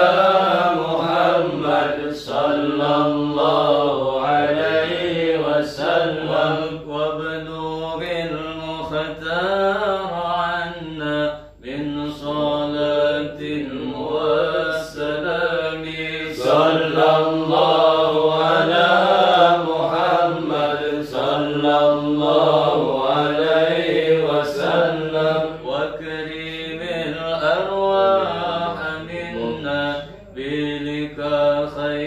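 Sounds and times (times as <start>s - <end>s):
men chanting: 0.0s - 32.0s.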